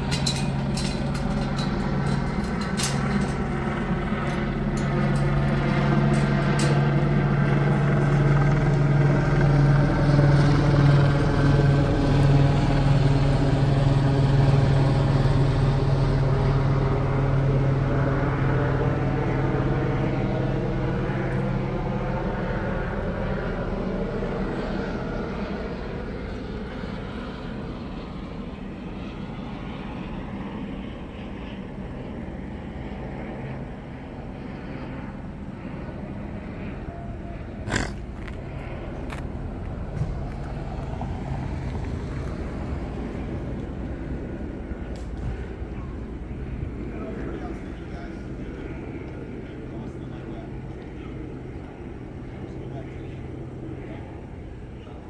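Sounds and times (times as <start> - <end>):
helicopter flying overhead: 0.0 - 55.0.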